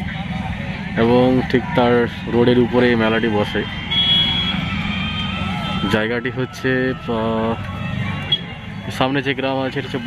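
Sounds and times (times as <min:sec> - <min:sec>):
crowded outdoor fair din: 0:00.0 - 0:10.0.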